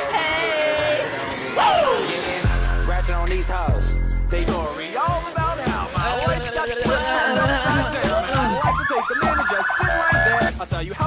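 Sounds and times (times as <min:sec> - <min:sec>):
hip-hop music with heavy beat: 0:00.0 - 0:11.0
police siren wailing: 0:06.4 - 0:10.5.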